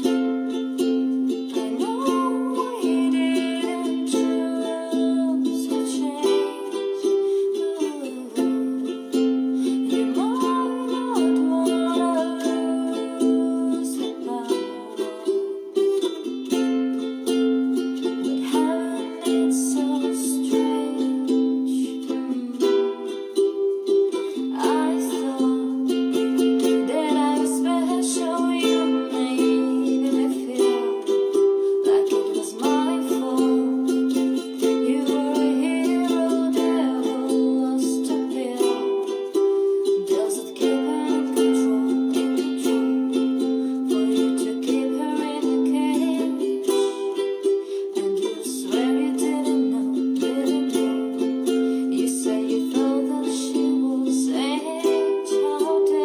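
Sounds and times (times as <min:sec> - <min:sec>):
woman singing slow song: 0:00.0 - 0:16.1, 0:17.8 - 0:56.0
ukulele strumming chords: 0:00.0 - 0:56.0.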